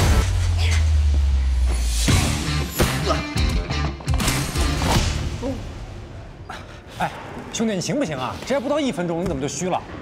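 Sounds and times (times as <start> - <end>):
music with heavy bass beat: 0.0 - 4.8.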